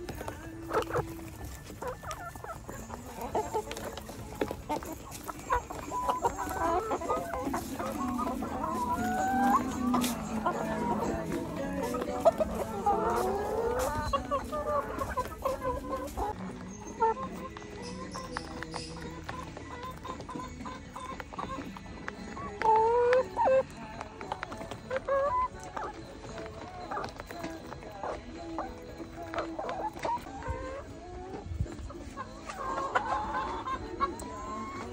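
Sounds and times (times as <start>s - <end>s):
hens clucking: 0.0s - 34.9s.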